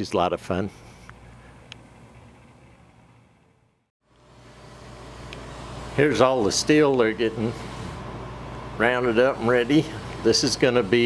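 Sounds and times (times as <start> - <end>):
outdoor background noise with hum: 0.0 - 11.0.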